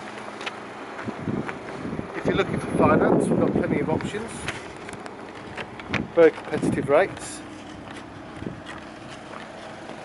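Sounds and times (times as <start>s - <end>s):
faint outdoor background noise: 0.0s - 10.0s
wind buffeting microphone: 1.0s - 9.4s.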